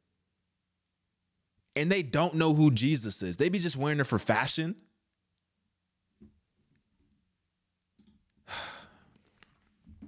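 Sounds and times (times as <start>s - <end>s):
breathy sigh: 8.4s - 9.2s.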